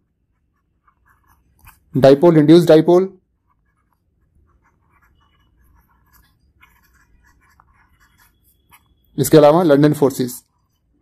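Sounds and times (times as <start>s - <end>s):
stylus scratching on tablet screen: 0.0s - 11.0s.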